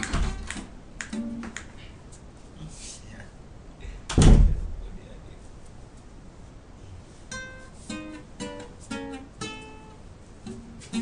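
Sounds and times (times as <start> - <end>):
deep loud thump: 4.1 - 4.8.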